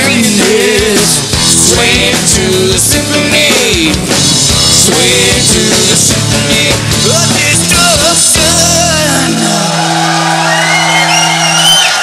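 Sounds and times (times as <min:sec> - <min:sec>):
audience cheering and whistling: 0:09.6 - 0:12.0.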